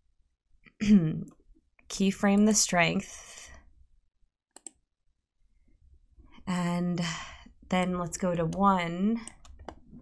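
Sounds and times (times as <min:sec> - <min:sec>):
computer mouse clicks: 0:04.6 - 0:04.8, 0:07.7 - 0:09.9.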